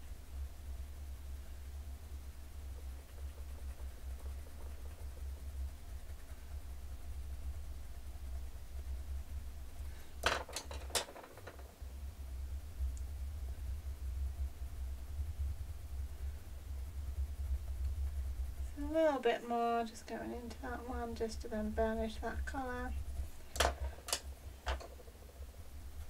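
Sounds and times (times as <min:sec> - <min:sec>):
low steady hum: 0:00.0 - 0:26.0.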